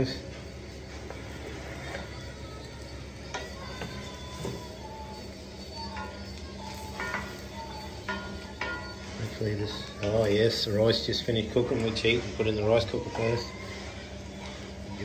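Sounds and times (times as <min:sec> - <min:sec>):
faint music: 0:00.0 - 0:15.0
food sizzling in frying pan: 0:00.7 - 0:15.0.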